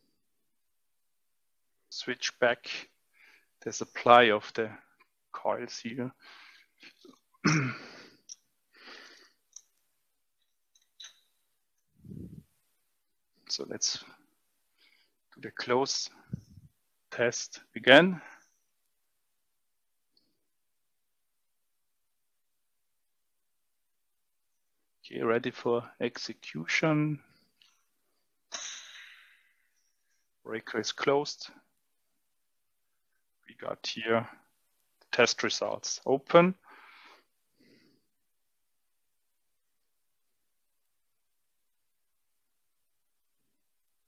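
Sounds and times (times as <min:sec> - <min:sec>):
man clearing his throat: 0:07.4 - 0:08.0
soft breath: 0:36.6 - 0:38.2.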